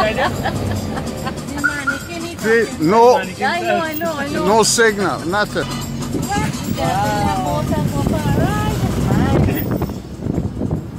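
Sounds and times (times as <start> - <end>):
car driving rumble: 0.0 - 10.9.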